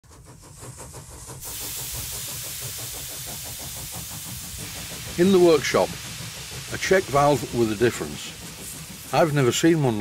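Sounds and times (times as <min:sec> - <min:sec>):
steam engine running: 0:00.0 - 0:10.0
loud hiss of steam: 0:00.4 - 0:10.0.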